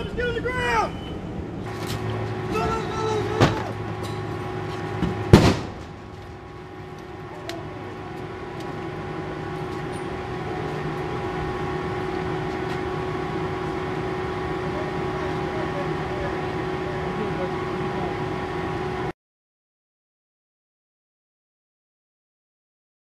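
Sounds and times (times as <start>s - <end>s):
steady mechanical hum: 0.0s - 19.1s.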